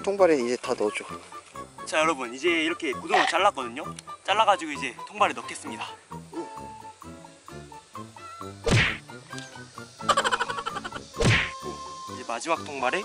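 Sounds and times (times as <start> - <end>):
background music: 0.0 - 13.0
whack-like hits: 8.6 - 9.0, 11.2 - 11.6.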